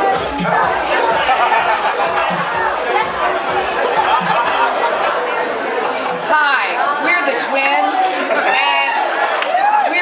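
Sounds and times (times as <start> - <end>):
low background music beat: 0.0 - 7.4
people talking over one another: 0.0 - 10.0.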